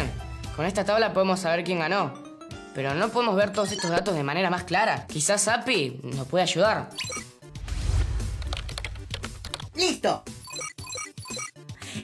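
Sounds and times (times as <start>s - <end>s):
background music: 0.0s - 12.0s
keyboard typing: 8.4s - 9.8s, 10.4s - 11.5s.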